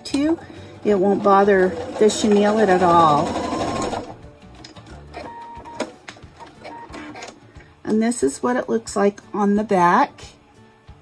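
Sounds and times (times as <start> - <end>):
sewing machine running: 0.8 - 4.2.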